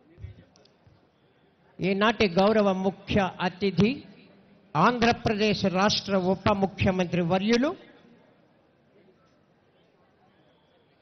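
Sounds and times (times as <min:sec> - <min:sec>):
man announcing: 0:01.8 - 0:04.1, 0:04.8 - 0:07.8.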